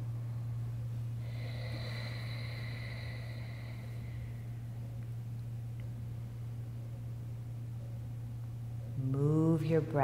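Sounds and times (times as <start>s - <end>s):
low steady hum: 0.0s - 10.0s
slow breath through nose: 1.2s - 4.5s.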